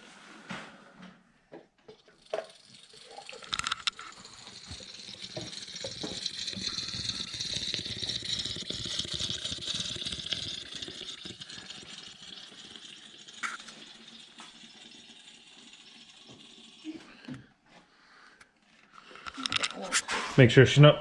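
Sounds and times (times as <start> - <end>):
oil pouring into funnel: 1.9 - 17.4.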